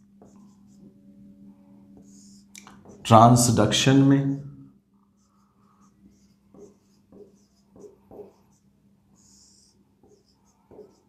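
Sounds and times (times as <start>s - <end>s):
marker pen writing on whiteboard: 0.0s - 3.3s, 5.0s - 11.0s.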